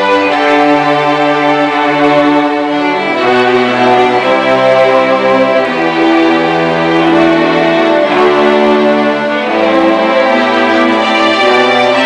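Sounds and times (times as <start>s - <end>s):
string section playing chords: 0.0s - 12.0s.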